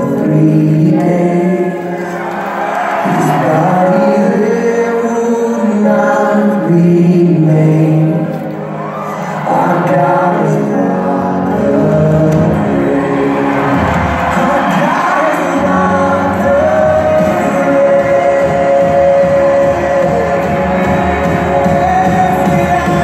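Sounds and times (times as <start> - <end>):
voices singing worship song: 0.0 - 23.0
instrumental backing: 9.9 - 23.0
bass instruments: 10.0 - 23.0.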